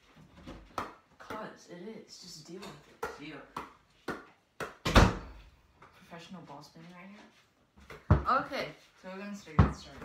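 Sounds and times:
basketball deep thud: 0:04.8 - 0:05.4.

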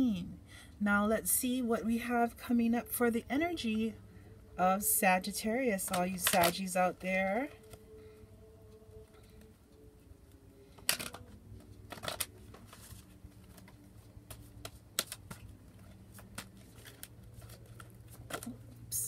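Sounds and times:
cards being shuffled: 0:05.9 - 0:06.6, 0:10.7 - 0:18.9.

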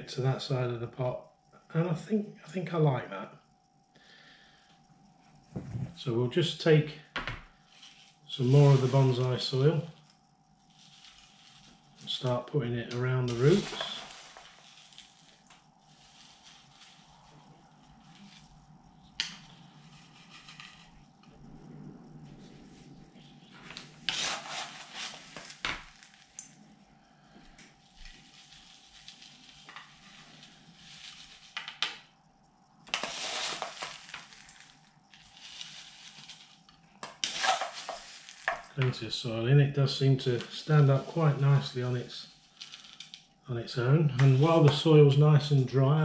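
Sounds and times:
gritty soil scooped and poured: 0:07.7 - 0:09.8, 0:13.2 - 0:18.6, 0:24.1 - 0:26.2, 0:28.3 - 0:31.6, 0:32.9 - 0:36.6, 0:37.2 - 0:38.8.

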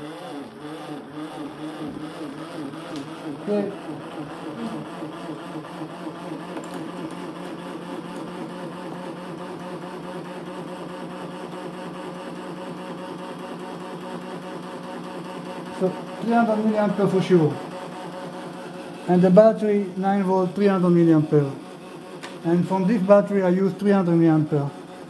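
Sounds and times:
generator whirring with pulsing: 0:00.0 - 0:25.0.

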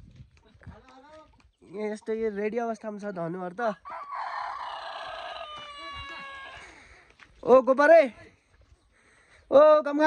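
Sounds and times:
rooster crowing: 0:03.8 - 0:06.8.

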